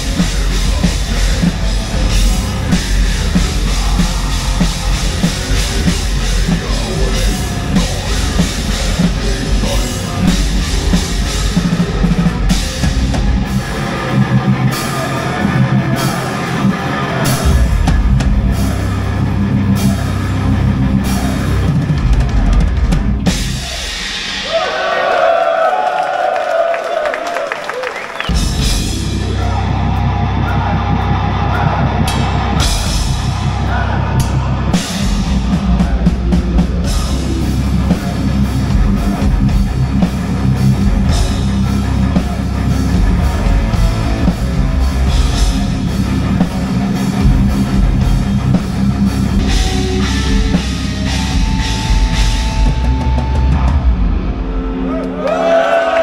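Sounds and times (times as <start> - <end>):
distorted guitars: 0.0 - 24.6, 28.2 - 56.0
drums and cymbals: 0.0 - 25.7, 28.2 - 54.9
heavy metal band playing live: 0.0 - 25.8, 28.2 - 56.0.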